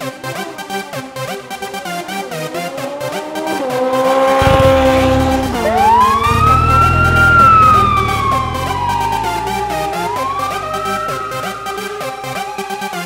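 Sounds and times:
police siren wailing: 1.6s - 13.0s.

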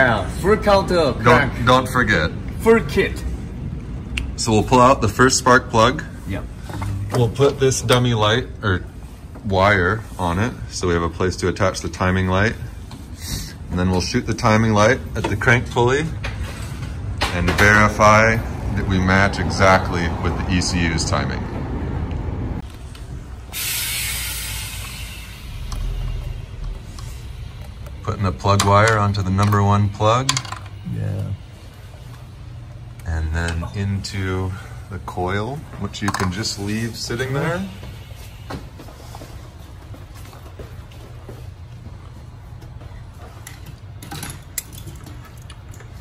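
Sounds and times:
steady low hum: 0.0s - 46.0s
low rumble: 18.3s - 28.4s
steady hiss: 23.4s - 28.5s.

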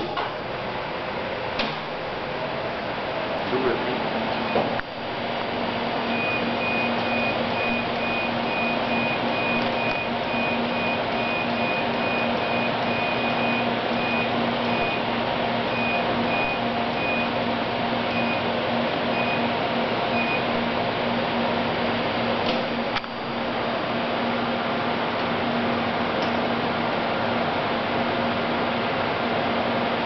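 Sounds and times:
machine fan whir and hum: 0.0s - 30.0s
electronic warning beeps: 4.4s - 4.8s, 6.0s - 17.4s, 18.1s - 18.5s, 19.1s - 20.5s.

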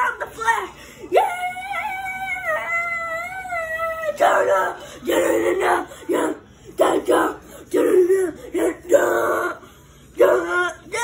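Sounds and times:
boy shouting: 0.0s - 9.6s, 10.2s - 11.0s.

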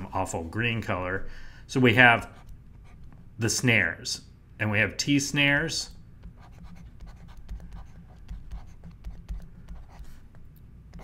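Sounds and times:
stylus scratching on tablet: 6.2s - 11.0s.

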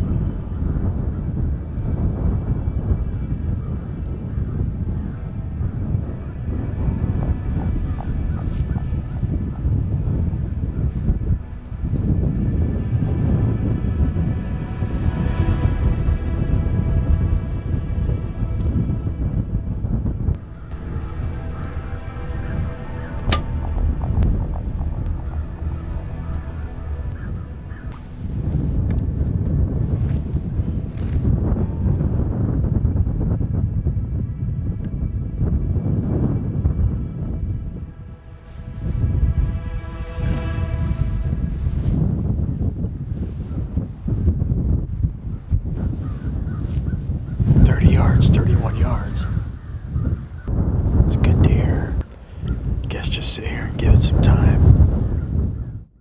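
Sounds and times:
background music with held tones: 0.0s - 46.6s
wind buffeting microphone: 0.0s - 56.0s.

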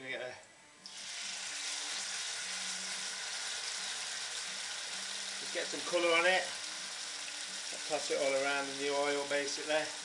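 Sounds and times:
meat sizzling in a frying pan: 0.9s - 10.0s.

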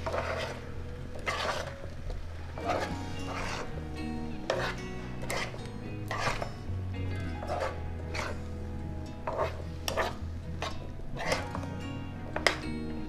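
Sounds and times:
spoon stirring thick syrup in pan: 0.0s - 6.7s, 7.3s - 13.0s.

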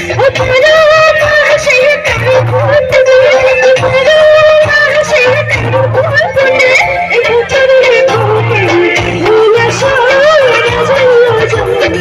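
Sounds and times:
amplified band: 0.0s - 12.0s
bass line: 0.0s - 12.0s
woman singing into microphone: 0.0s - 12.0s.

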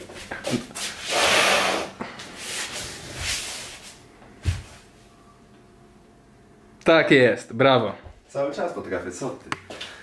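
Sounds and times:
body thump on floor: 4.4s - 4.8s.

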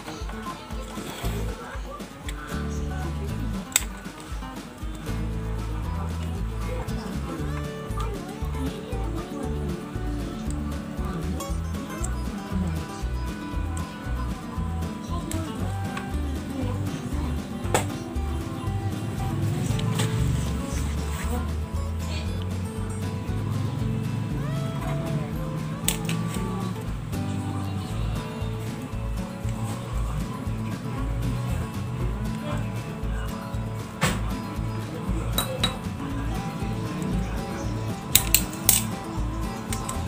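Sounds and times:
background music with steady beat: 0.0s - 40.0s.

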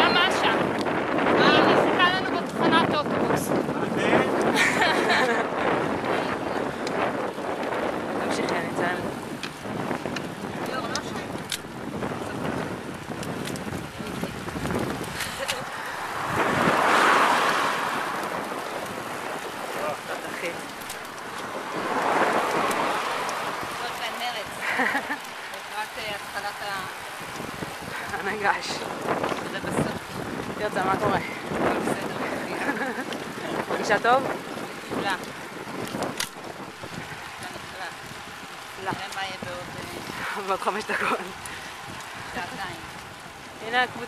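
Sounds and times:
wind rushing over microphone: 0.0s - 44.0s.

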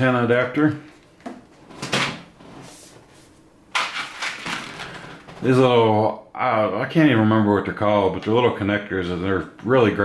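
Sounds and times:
plastic and card packaging rustling: 0.9s - 5.5s.

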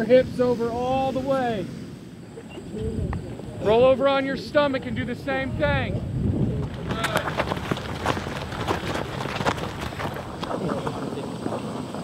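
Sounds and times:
footfalls on rubber track: 6.5s - 12.0s.

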